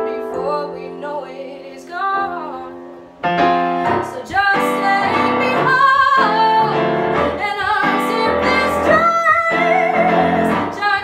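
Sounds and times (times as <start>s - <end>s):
electronic keyboard: 0.0s - 11.0s
woman singing jazzy song: 0.0s - 11.0s.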